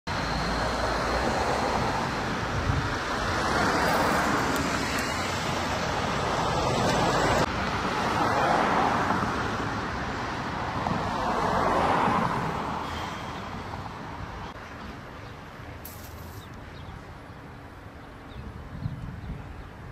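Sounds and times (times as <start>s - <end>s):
cars passing: 0.1s - 18.3s
steady road hum: 0.1s - 19.9s.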